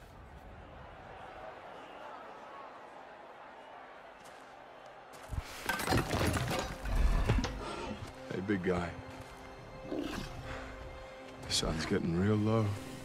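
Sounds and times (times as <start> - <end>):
glass shattering and debris clattering: 5.5 - 7.5.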